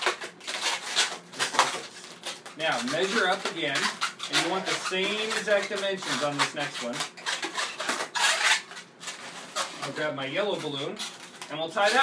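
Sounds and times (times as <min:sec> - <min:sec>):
balloons rubbing: 0:00.0 - 0:12.0.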